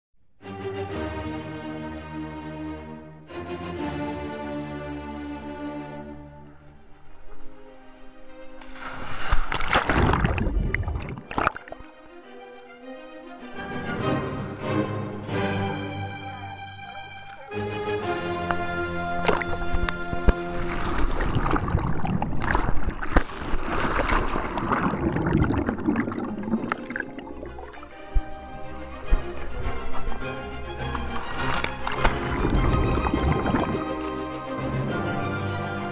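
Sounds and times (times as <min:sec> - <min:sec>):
orchestral music: 0:00.4 - 0:09.4, 0:11.3 - 0:21.7, 0:26.2 - 0:35.9
sharp water splash: 0:08.6 - 0:11.9, 0:18.4 - 0:28.3, 0:30.8 - 0:34.1
underwater bubbling: 0:08.9 - 0:11.9, 0:18.4 - 0:34.2
rush of noise: 0:32.1 - 0:34.0.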